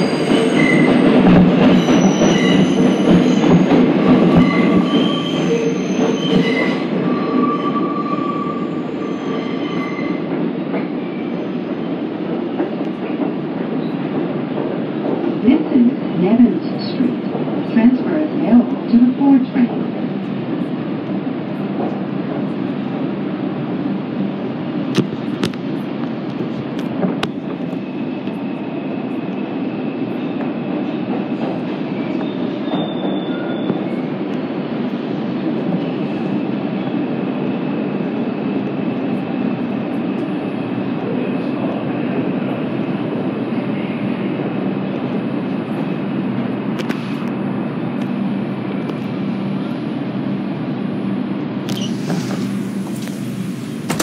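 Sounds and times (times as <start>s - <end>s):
subway wheels rumbling on rail: 0.0s - 54.0s.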